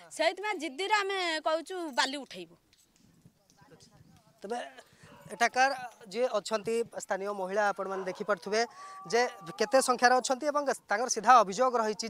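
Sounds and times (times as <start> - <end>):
woman speaking: 0.0 - 2.6
faint background voices: 3.0 - 9.9.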